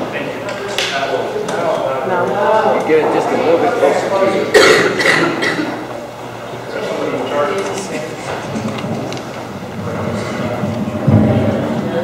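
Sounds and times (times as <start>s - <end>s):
loud cough: 4.5s - 5.8s.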